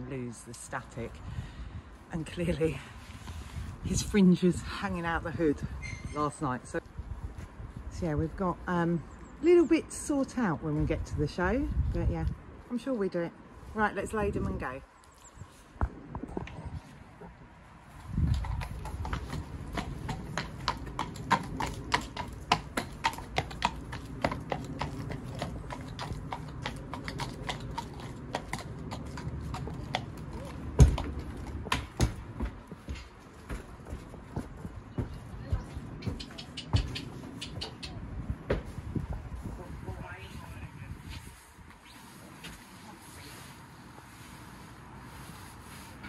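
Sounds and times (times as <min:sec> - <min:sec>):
hooves clip-clopping on concrete: 0:17.9 - 0:42.6
heavy thud in horsebox: 0:30.7 - 0:34.0.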